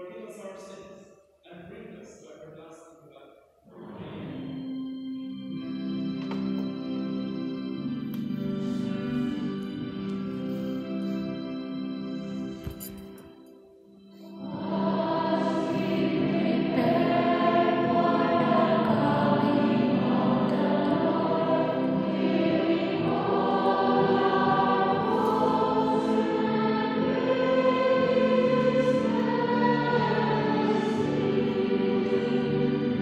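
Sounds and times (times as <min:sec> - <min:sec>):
choir singing: 0:03.7 - 0:04.9, 0:14.4 - 0:33.0.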